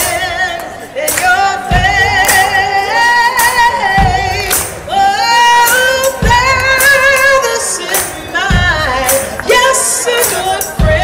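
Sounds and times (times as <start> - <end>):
woman singing blues: 0.0 - 11.0.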